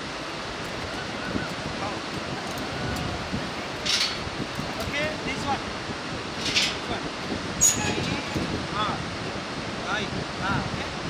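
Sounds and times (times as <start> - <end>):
whitewater river rushing: 0.0 - 11.0
wind: 0.0 - 11.0.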